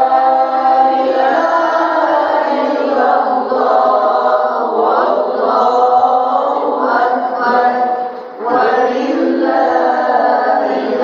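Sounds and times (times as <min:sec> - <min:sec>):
melodic recitation chanted aloud: 0:00.0 - 0:11.0.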